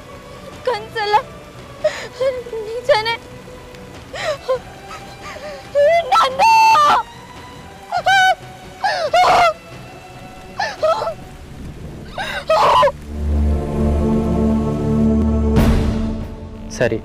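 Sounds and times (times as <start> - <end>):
pouring rain: 0.0 - 17.0
woman sobbing: 1.8 - 3.1, 4.1 - 7.0, 7.9 - 9.6, 10.5 - 11.2, 12.1 - 13.0
low sustained music chord: 13.0 - 17.0.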